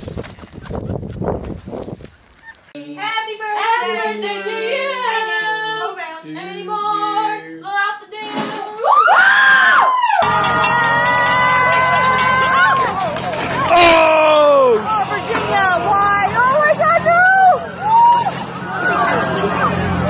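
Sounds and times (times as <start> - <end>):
people singing slow tune: 2.8 - 8.8
long loud scream: 8.8 - 12.8
sudden rush of noise: 13.0 - 18.8.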